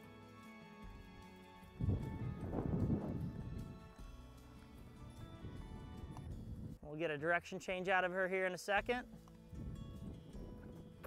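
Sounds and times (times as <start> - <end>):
background music: 0.0 - 11.0
horse hooves in dirt: 1.9 - 6.8, 8.8 - 11.0.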